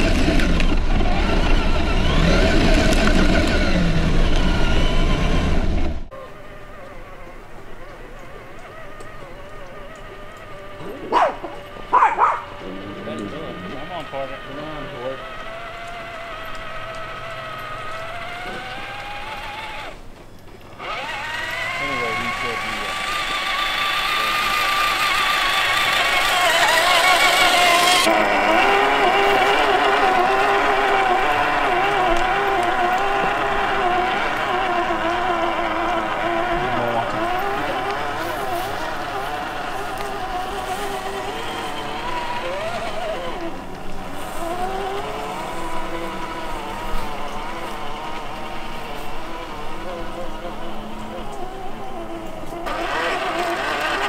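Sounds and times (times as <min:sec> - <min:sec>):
electric motor and gearbox whining: 0:00.0 - 0:54.0.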